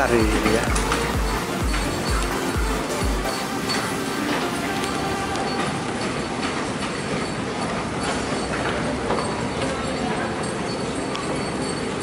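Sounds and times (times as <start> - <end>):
moving walkway rumbling: 0.0 - 12.0.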